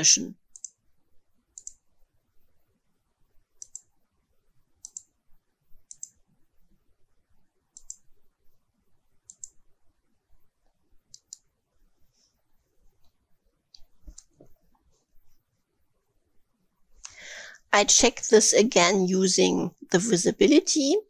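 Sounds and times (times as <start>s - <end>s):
computer mouse double clicks: 7.8s - 8.0s.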